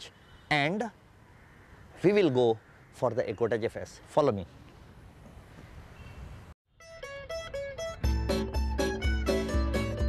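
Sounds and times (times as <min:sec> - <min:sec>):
faint outdoor background noise: 0:00.0 - 0:06.6
plucked string music: 0:06.8 - 0:10.0.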